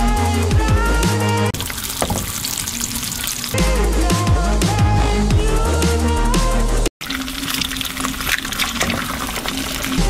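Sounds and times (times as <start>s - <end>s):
eggs sizzling in a pan: 1.6s - 3.6s, 7.0s - 10.0s
electronic music with heavy bass: 3.5s - 6.9s.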